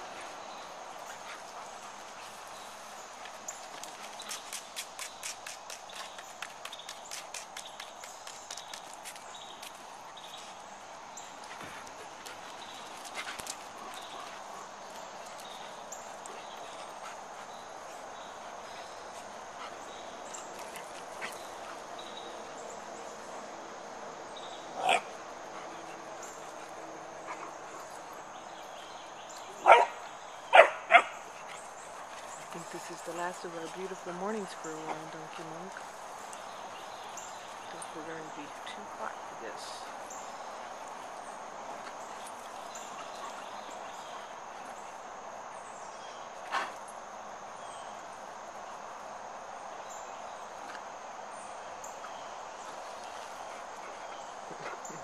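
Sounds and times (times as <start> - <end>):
dogs barking: 29.6 - 31.2.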